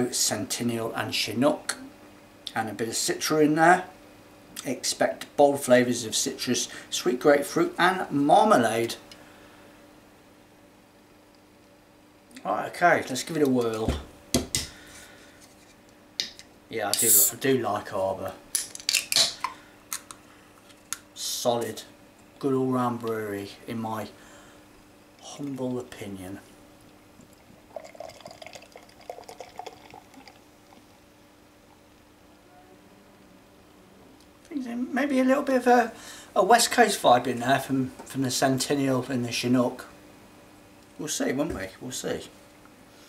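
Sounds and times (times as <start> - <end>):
gas hissing from can: 17.0 - 17.4
beer pouring into glass: 27.3 - 31.0.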